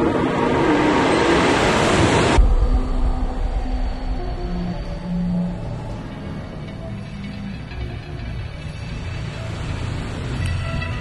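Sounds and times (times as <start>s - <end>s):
low rumble: 0.0s - 11.0s
held low tones: 2.4s - 9.1s.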